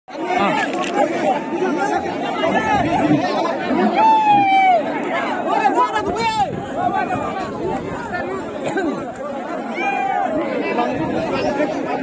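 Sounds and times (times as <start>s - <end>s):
crowd chattering and calling out: 0.1s - 12.0s.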